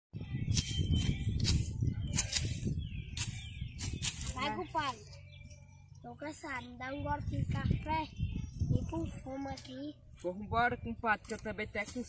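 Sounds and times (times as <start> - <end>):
hoe chopping dry soil: 0.5 - 4.6.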